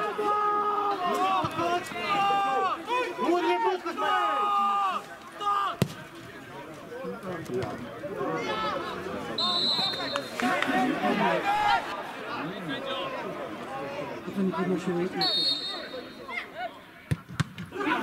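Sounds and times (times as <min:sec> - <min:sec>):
players calling and shouting: 0:00.0 - 0:18.0
referee's whistle blasts: 0:09.4 - 0:10.4, 0:15.1 - 0:16.4.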